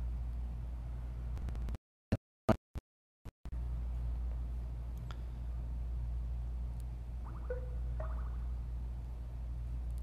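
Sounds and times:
low hum of room tone: 0.0 - 1.7, 3.5 - 10.0.

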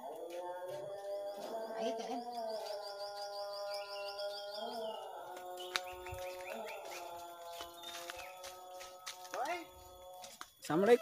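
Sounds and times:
bird singing: 0.0 - 11.0.

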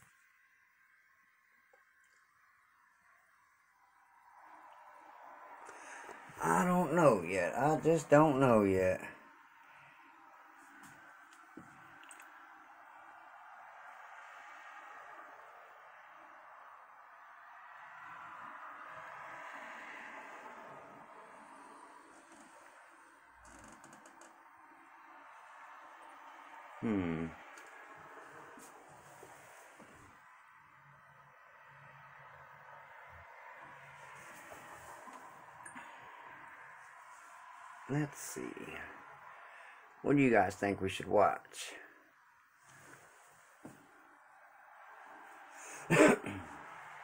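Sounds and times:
man coughing: 45.8 - 46.6.

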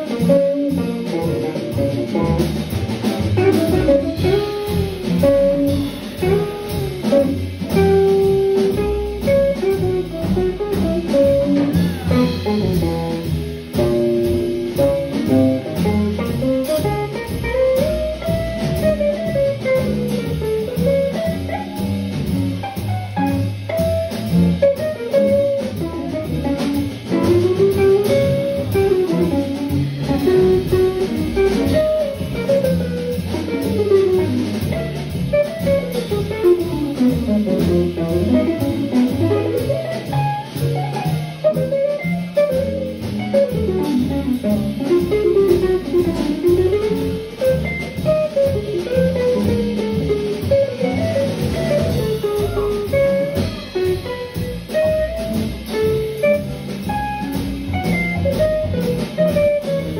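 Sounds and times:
jazz drums: 0.0 - 59.9
walking bass line: 0.0 - 59.9.

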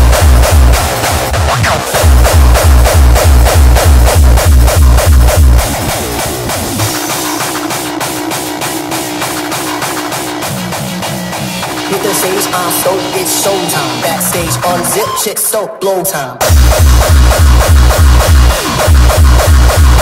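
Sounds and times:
heavy kick drum: 0.0 - 15.0, 16.4 - 20.0
hardcore electronic dance music: 0.0 - 20.0.

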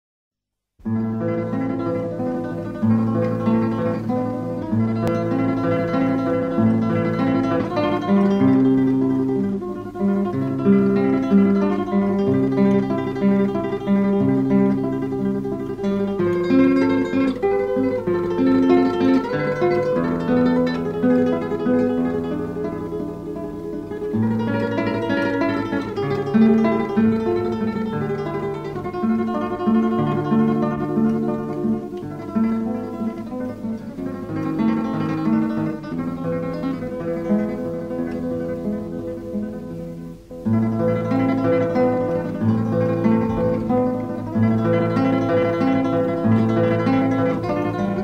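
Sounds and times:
acoustic guitar music: 0.8 - 48.0.

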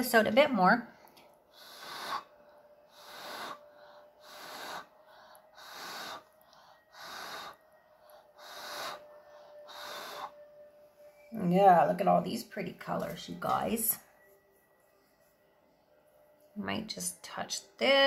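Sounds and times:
breath puffs blown by mouth: 1.5 - 2.3, 2.9 - 7.6, 8.4 - 10.4.

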